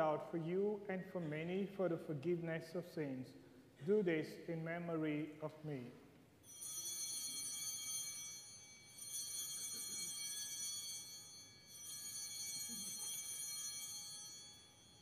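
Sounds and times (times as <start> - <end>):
high-pitched altar bells ringing: 6.4 - 15.0.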